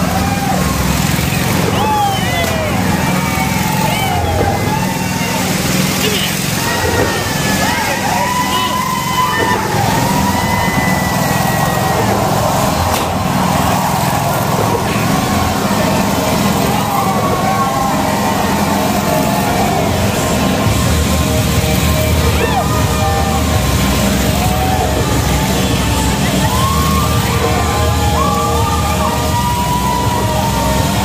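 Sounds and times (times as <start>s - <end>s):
motorcycle engines running hard: 0.0s - 31.0s.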